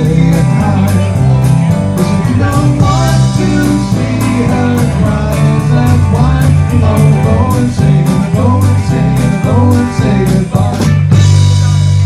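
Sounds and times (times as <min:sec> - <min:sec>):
bass guitar: 0:00.0 - 0:12.0
electric guitar: 0:00.0 - 0:12.0
keyboards: 0:00.0 - 0:12.0
steady drum beat: 0:00.0 - 0:12.0.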